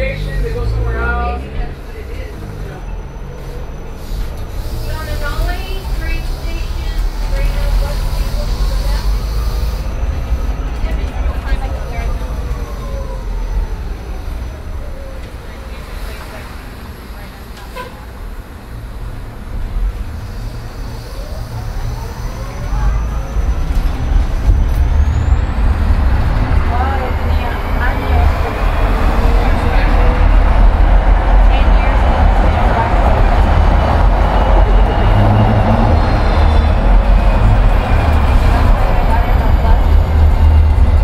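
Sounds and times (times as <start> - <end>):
faint voices: 0.0 - 18.4, 19.4 - 41.0
bus rumbling along street: 0.0 - 41.0.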